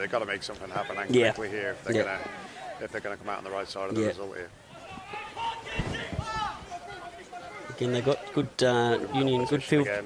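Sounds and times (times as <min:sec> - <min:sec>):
commentary: 0:00.0 - 0:10.0
players calling and shouting: 0:00.0 - 0:10.0.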